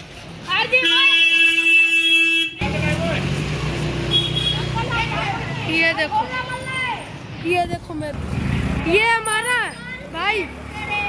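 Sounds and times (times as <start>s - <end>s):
vehicle horn: 0.7s - 2.7s, 4.1s - 4.8s
engine rumbling: 2.6s - 11.0s.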